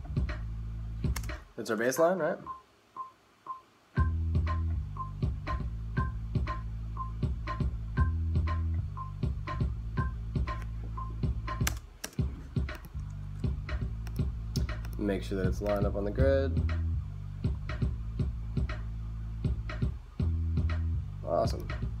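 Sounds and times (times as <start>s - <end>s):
looping drum beat: 0.0s - 22.0s.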